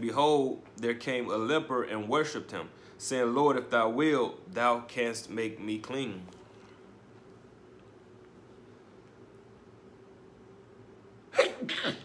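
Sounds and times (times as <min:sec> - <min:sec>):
man sneezing: 0:11.3 - 0:12.0.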